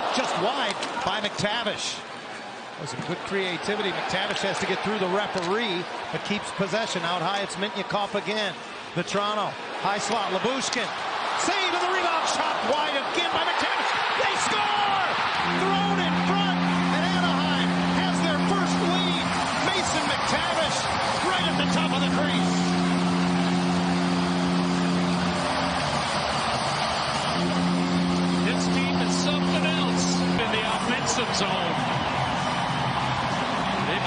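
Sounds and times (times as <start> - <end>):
crowd cheering: 0.0 - 34.0
goal horn blasts: 14.3 - 32.1.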